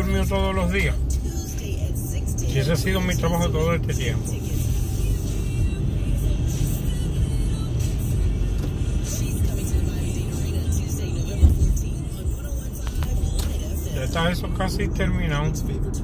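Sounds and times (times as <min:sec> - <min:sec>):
car road and engine rumble: 0:00.0 - 0:16.0.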